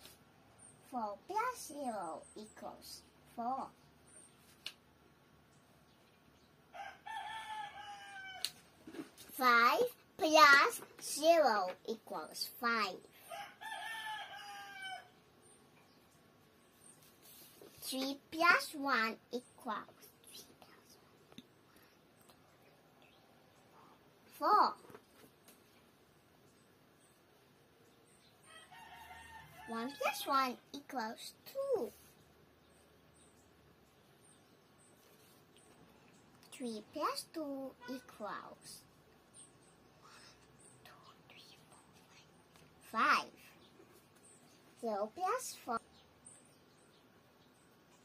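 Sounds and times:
rooster crowing: 6.8 - 8.5, 13.3 - 15.2, 28.4 - 30.1.

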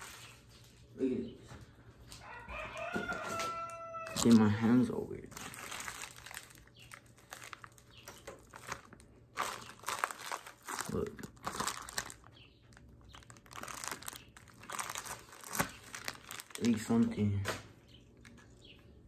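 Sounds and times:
plastic bag crinkling: 4.0 - 17.2.

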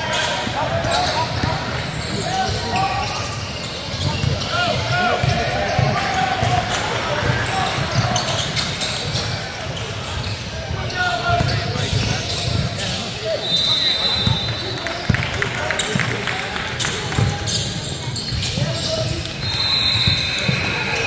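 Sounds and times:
sneaker squeaks: 0.0 - 16.2, 16.8 - 21.0.

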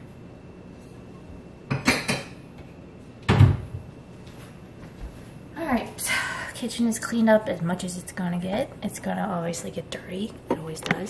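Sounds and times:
cabinet door knocking shut: 3.3 - 3.7.

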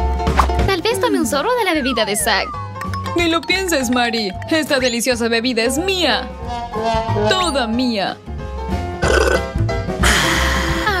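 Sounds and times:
background music: 0.0 - 11.0
burp: 9.0 - 9.6.

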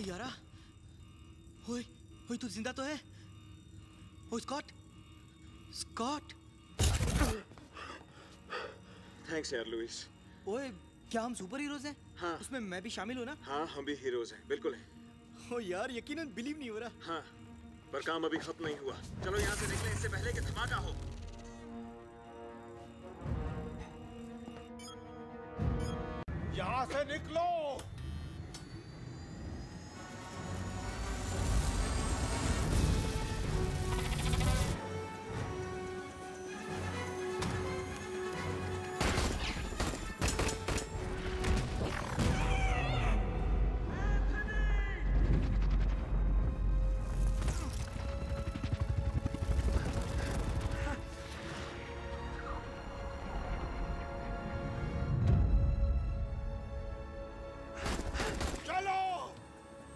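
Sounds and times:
film score music: 0.0 - 59.9.

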